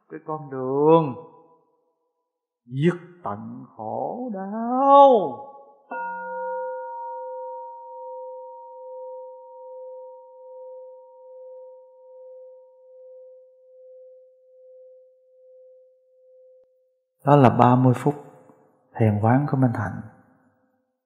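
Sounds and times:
meditation bell ringing: 5.9 - 16.8.

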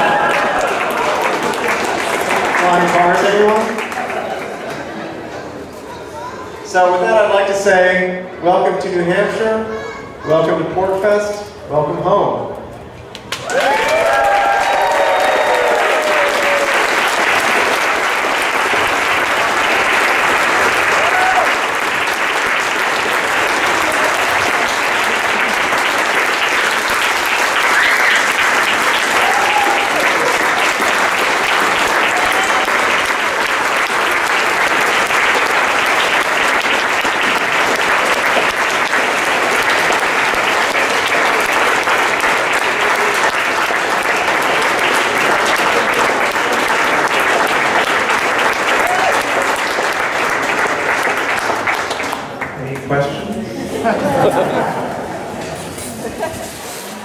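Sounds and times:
audience applauding: 0.0 - 5.1, 13.1 - 53.1.

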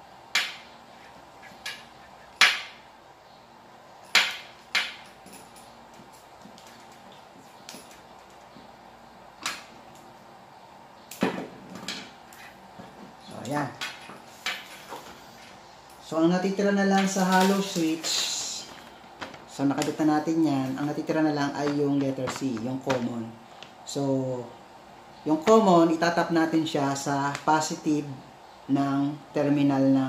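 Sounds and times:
clicks of handling wires and tools: 21.6 - 23.8.

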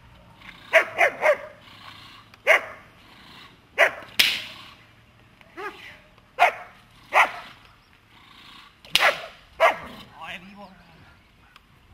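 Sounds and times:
dog barking: 0.7 - 1.6, 2.5 - 2.8, 3.8 - 4.0, 6.4 - 7.5, 9.0 - 9.9.

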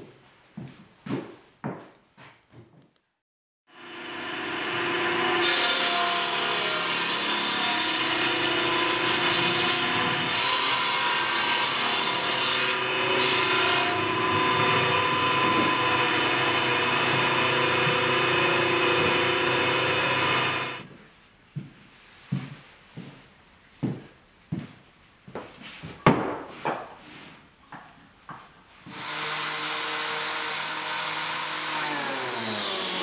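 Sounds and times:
woodworking machine cutting board: 3.8 - 20.9, 28.9 - 33.0.

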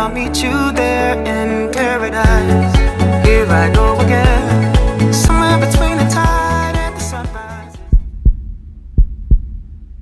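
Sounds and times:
heartbeat thumps: 7.8 - 10.0.

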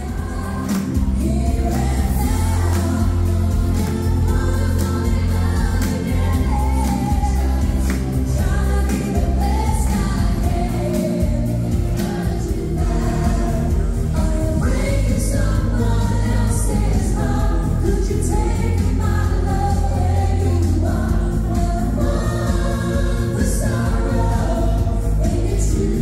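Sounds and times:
bass-heavy dance beat: 0.0 - 26.0
group singing pop: 0.0 - 26.0.

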